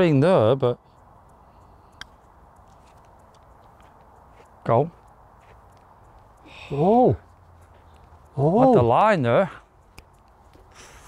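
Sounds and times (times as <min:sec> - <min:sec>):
faint outdoor hush: 0:00.0 - 0:11.0.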